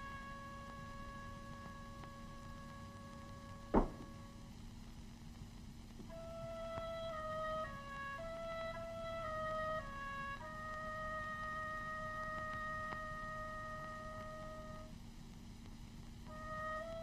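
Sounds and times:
soft flute-like melody: 0.0s - 4.5s, 6.0s - 15.0s, 16.2s - 17.0s.

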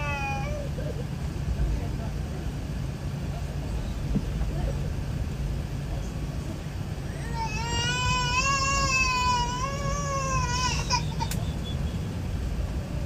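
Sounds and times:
infant crying: 0.0s - 0.8s, 7.1s - 11.3s
airliner cabin noise: 0.0s - 13.0s.

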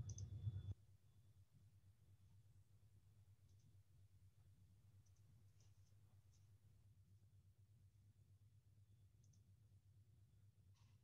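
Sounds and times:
faint clicks: 0.0s - 0.8s, 9.2s - 9.4s.

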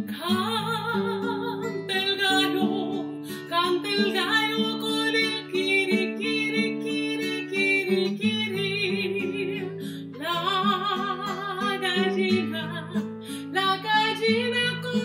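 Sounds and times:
acoustic guitar plucked notes: 0.0s - 15.0s
woman singing with vibrato: 0.0s - 15.0s.

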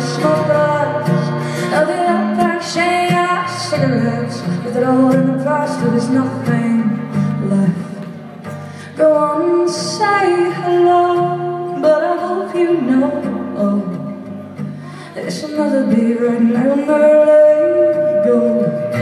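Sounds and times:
strummed acoustic guitar: 0.0s - 19.0s
woman singing long notes: 15.0s - 19.0s.

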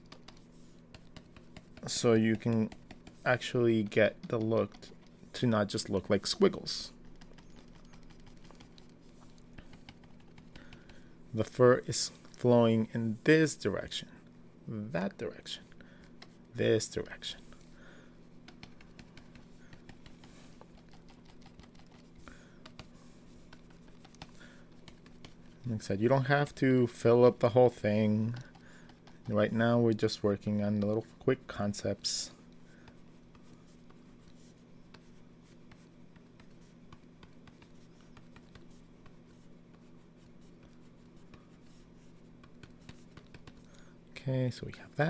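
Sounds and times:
stylus scratching on drawing tablet: 0.0s - 11.7s, 18.3s - 31.3s, 32.8s - 43.7s
steady low hum: 0.0s - 45.0s.

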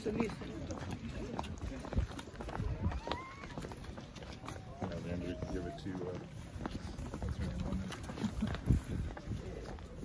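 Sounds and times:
footsteps on cobblestones: 0.0s - 10.0s.

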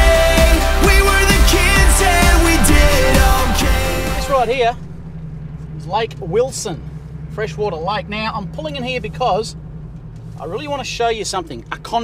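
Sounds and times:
vehicle engine drone from inside cab: 0.0s - 12.0s.

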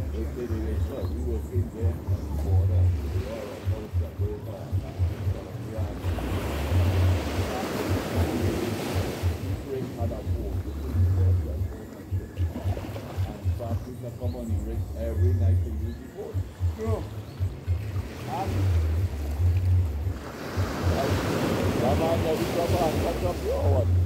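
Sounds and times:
waves lapping on sand beach: 0.0s - 14.4s, 15.9s - 24.0s
wind on microphone: 0.0s - 24.0s.

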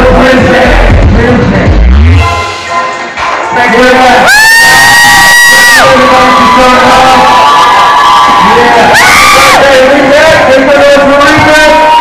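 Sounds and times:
loud long high whoops: 4.2s - 9.7s
crowd cheering and whooping: 4.2s - 12.0s.

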